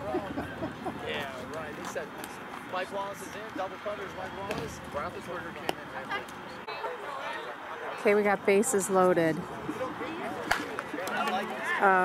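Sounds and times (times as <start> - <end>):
background chatter: 0.0 - 12.0
bat hitting ball: 10.4 - 10.8.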